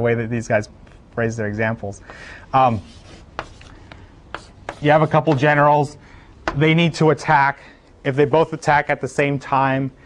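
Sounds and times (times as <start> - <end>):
chalk tapping on blackboard: 2.8 - 5.6.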